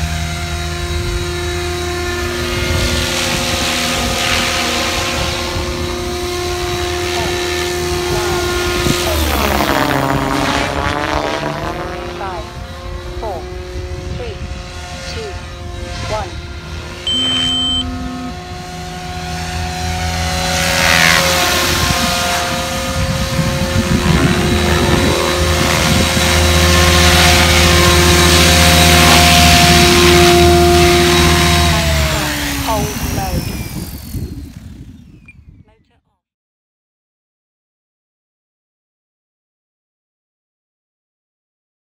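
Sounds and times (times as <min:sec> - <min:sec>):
rotor blades whooshing: 0:00.0 - 0:35.3
electric motor whine: 0:00.0 - 0:35.6.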